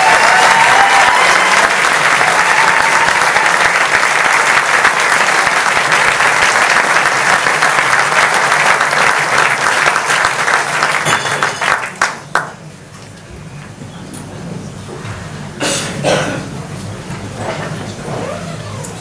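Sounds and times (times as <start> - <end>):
audience applauding: 0.0 - 12.6.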